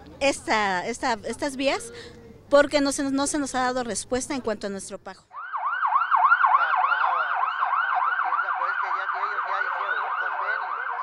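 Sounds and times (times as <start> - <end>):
ambulance siren yelping: 5.3 - 11.0.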